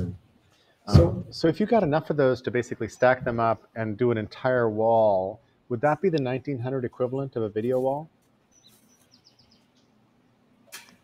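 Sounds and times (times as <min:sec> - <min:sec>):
low steady hum: 0:00.0 - 0:10.7.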